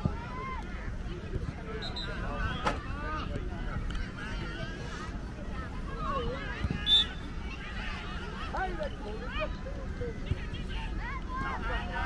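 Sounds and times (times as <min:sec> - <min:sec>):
children shouting: 0:10.6 - 0:12.0.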